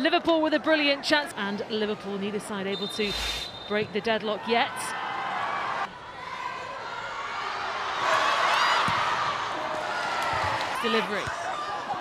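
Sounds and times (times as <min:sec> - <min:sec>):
stadium crowd noise: 0:00.0 - 0:12.0.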